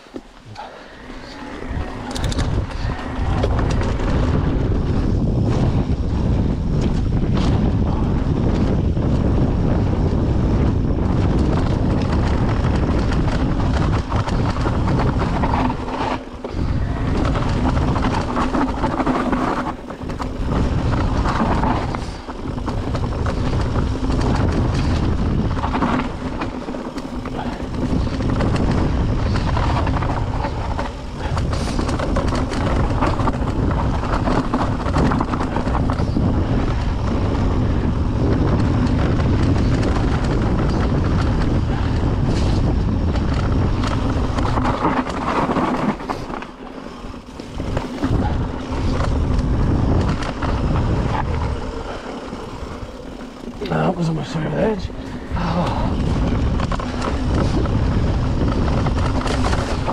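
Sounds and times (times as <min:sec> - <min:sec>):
bike tyres rolling on gravel: 0:00.0 - 0:59.9
wind rushing over microphone: 0:00.0 - 0:59.9.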